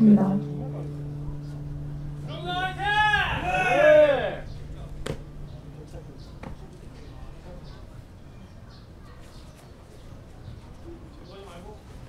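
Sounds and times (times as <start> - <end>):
man shouting calls: 2.3 - 4.5.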